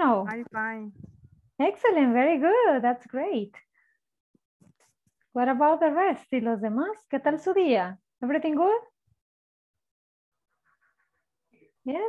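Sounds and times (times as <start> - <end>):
woman speaking: 0.0 - 3.6.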